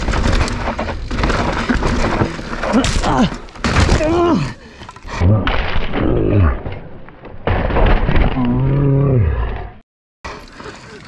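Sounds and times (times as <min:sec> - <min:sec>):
bike crashing into dirt: 0:00.0 - 0:04.2.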